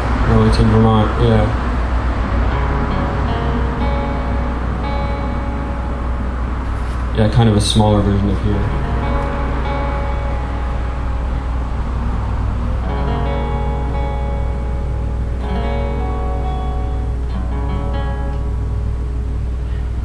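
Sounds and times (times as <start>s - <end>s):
acoustic guitar chords strummed: 0.0s - 20.0s
low rumble: 0.0s - 20.0s.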